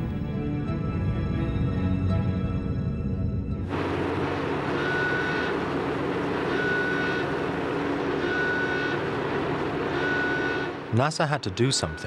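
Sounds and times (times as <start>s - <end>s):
machinery rumble: 2.9s - 12.0s
high electronic beep: 9.9s - 12.0s.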